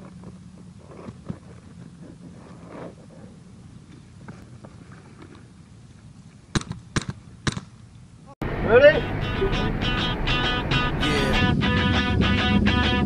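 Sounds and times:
paintball marker pops: 6.5s - 7.7s
low steady rumble: 7.2s - 12.6s.

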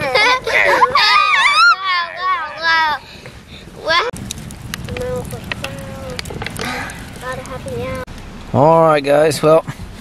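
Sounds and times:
campfire crackling and popping: 0.0s - 9.2s.

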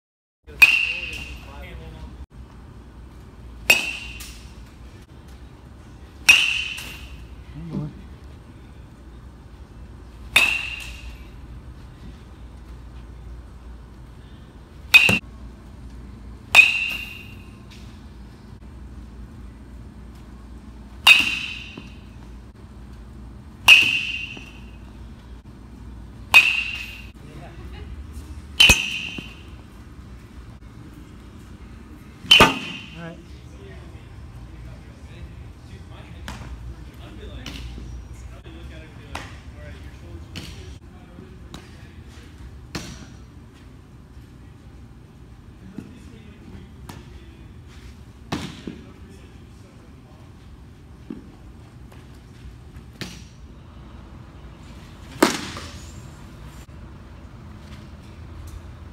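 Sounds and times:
metal bat pinging balls: 0.5s - 1.5s, 3.6s - 4.5s, 6.2s - 7.2s, 10.3s - 11.4s, 14.9s - 15.3s, 16.5s - 17.6s, 21.0s - 22.2s, 23.6s - 24.9s, 26.3s - 27.1s, 28.6s - 29.6s, 32.3s - 33.0s.

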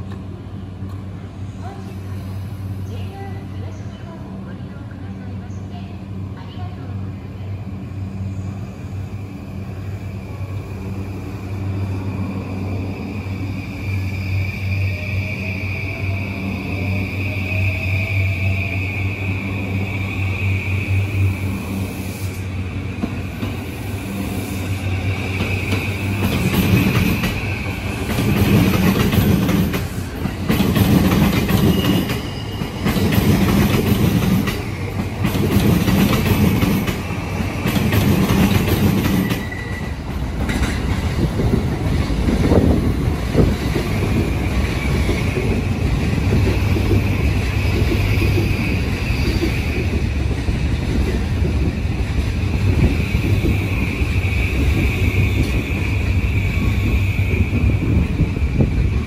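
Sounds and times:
electric train hum and whine: 0.0s - 59.0s.

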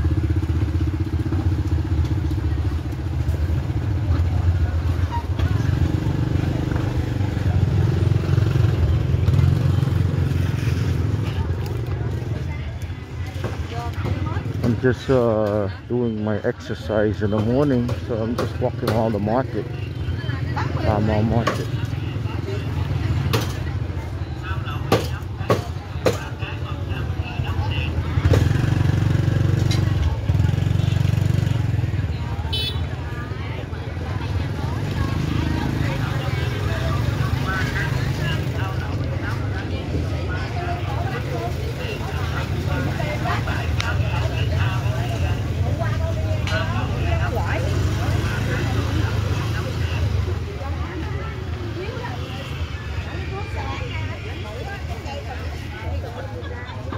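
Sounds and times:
chatter of vendors and shoppers: 0.0s - 56.9s
motorbikes passing: 0.0s - 56.9s.

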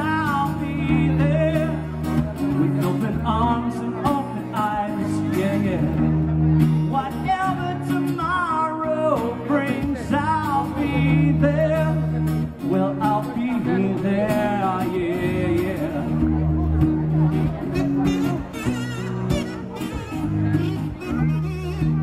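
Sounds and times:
man singing: 0.0s - 6.2s, 6.8s - 16.7s
acoustic guitar strumming: 0.0s - 22.0s.

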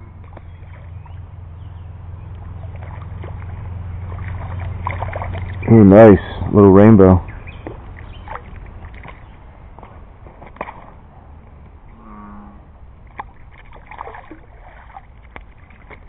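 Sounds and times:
brief low hum: 0.0s - 9.3s
low steady background rumble: 0.0s - 16.0s
fish splashing at water surface: 0.2s - 1.2s, 2.3s - 6.3s, 7.5s - 11.1s, 13.0s - 16.0s.

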